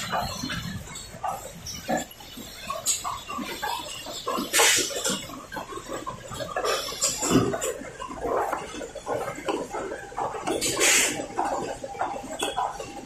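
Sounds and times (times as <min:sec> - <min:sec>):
packing machine clattering: 0:00.0 - 0:13.0.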